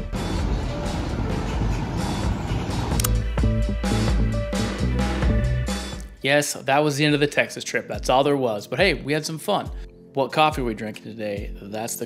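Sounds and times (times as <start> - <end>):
cars driving along street: 0.0 - 3.1
background music: 0.0 - 12.0.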